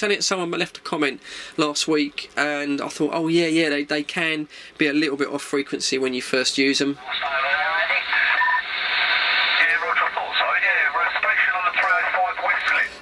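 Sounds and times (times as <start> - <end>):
receiver hiss: 6.8 - 13.0
voices over cb radio speaker: 6.9 - 13.0.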